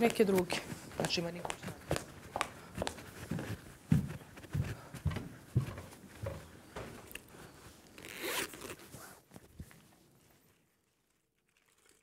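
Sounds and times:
zipper-like rasp: 0:08.0 - 0:09.2.

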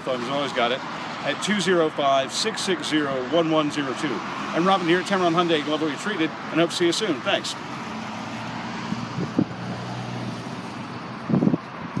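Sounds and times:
low traffic hum: 0:00.0 - 0:12.0
wind on microphone: 0:08.6 - 0:12.0.

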